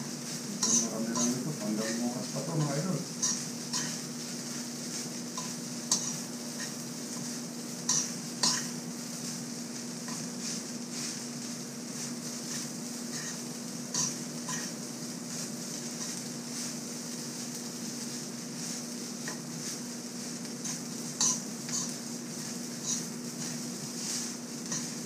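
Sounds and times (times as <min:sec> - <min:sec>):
faint sizzle: 0:00.0 - 0:25.0
metal spoon scraping a wok: 0:00.6 - 0:02.0, 0:02.6 - 0:04.7, 0:05.3 - 0:08.8, 0:10.0 - 0:11.3, 0:12.1 - 0:14.8, 0:20.6 - 0:25.0.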